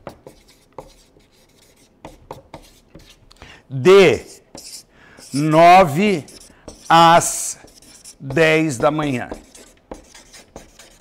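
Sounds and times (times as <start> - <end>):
felt-tip marker writing on paper: 0.2 - 3.2, 6.2 - 11.0.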